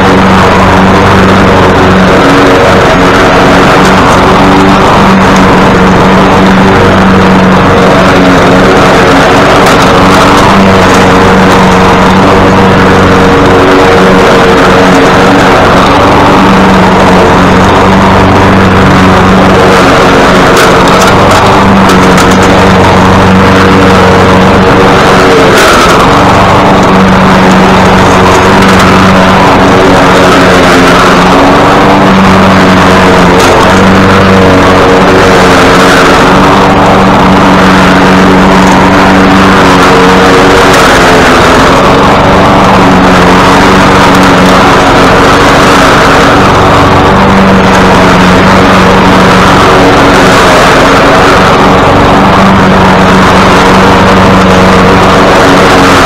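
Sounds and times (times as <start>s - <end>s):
lawn mower engine cutting grass: 0.0s - 56.0s.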